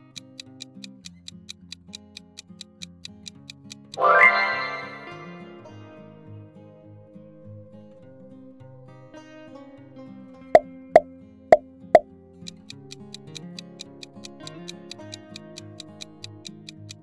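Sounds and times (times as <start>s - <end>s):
countdown timer ticking: 0.0s - 5.4s, 12.4s - 17.0s
plucked guitar music: 0.0s - 17.0s
pop sound effects: 4.0s - 5.4s.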